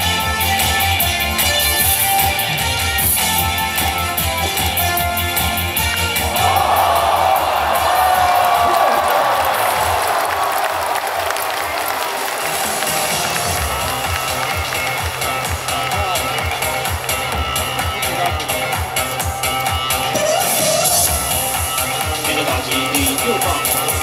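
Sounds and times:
dance beat over sound system: 0.0s - 9.9s, 12.4s - 24.0s
stadium crowd cheering and clapping: 0.0s - 24.0s.

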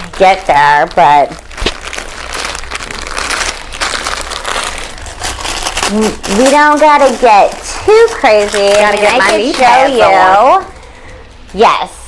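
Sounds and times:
crinkling and rustling: 0.0s - 11.6s.

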